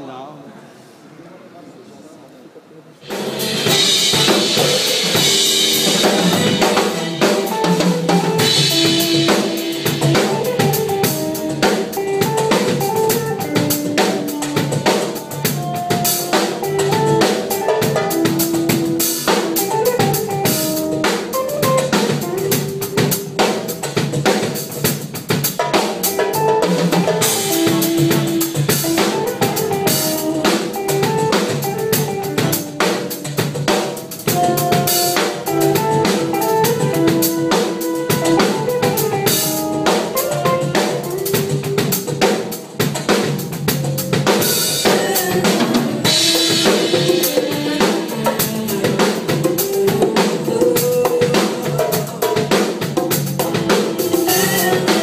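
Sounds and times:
cymbals washing: 3.0 - 23.9, 25.8 - 55.0
backing track melody: 3.0 - 55.0
drum kit playing groove: 3.0 - 55.0.

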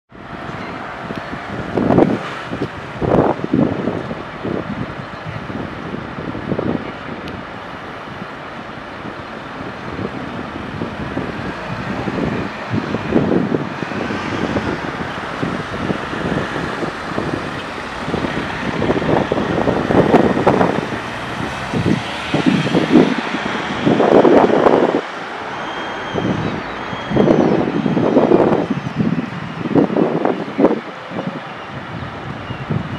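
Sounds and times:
road traffic passing: 0.1 - 32.9
wind buffeting microphone: 0.1 - 32.9.

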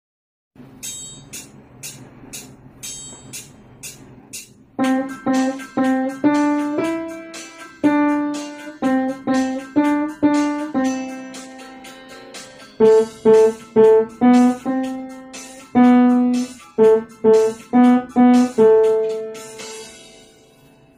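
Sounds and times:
high percussive ticks: 0.8 - 11.6
acoustic piano melody: 4.7 - 20.9.

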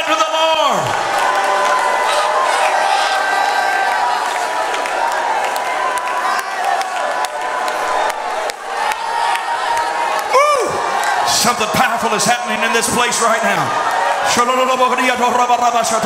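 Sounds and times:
congregation shouting praise: 0.0 - 16.0.

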